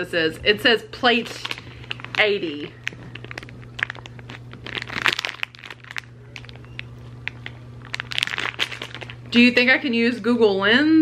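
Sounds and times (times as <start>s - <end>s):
plastic bag crinkling: 1.1s - 9.7s.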